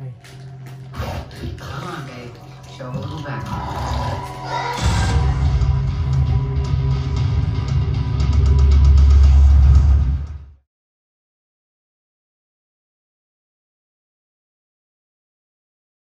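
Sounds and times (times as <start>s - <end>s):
dialogue on television: 0.0s - 7.4s
loud film score with heavy bass: 0.0s - 10.6s.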